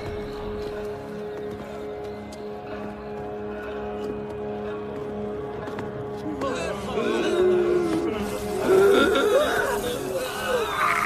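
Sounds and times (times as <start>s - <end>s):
low suspense drone: 0.0s - 11.0s.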